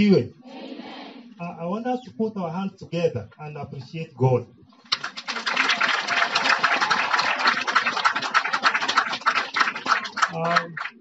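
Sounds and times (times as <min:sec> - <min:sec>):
crowd applauding: 0:04.8 - 0:11.0.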